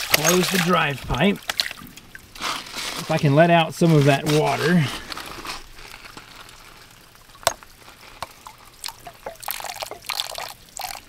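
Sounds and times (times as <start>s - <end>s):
water trickling and dripping: 0.0s - 11.0s.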